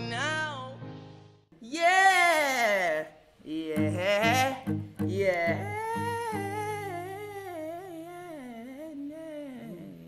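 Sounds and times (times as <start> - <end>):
man singing wordless melody: 1.6 - 10.0.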